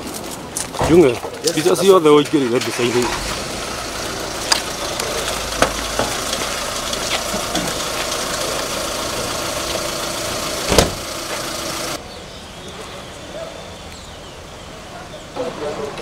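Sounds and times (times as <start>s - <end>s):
vehicle engine idling: 1.5s - 12.0s.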